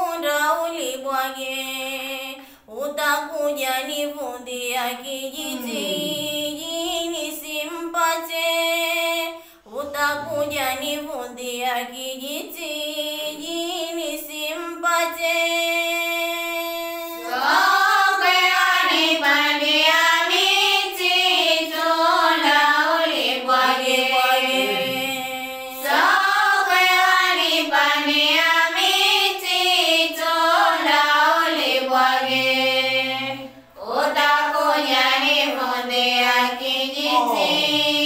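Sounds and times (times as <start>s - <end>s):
girl singing unaccompanied: 0.0s - 38.0s.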